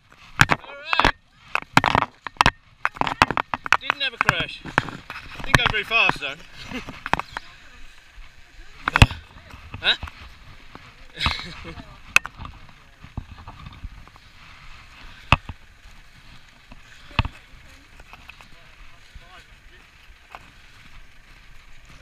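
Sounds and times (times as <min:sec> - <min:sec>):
sharp knocks and clatters: 0:00.3 - 0:07.4.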